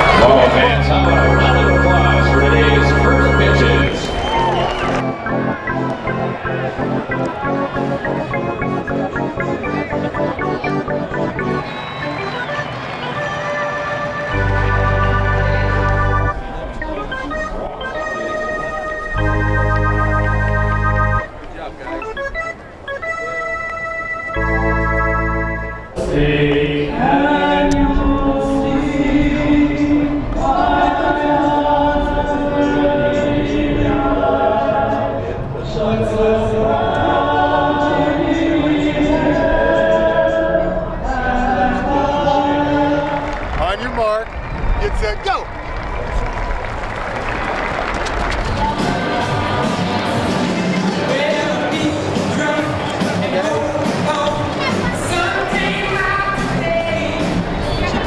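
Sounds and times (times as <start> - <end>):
stadium crowd cheering: 0.0 - 9.2, 10.3 - 17.0, 42.9 - 58.0
music and singing: 0.0 - 21.2, 24.3 - 43.6, 48.5 - 58.0
organ playing chords: 0.0 - 27.6.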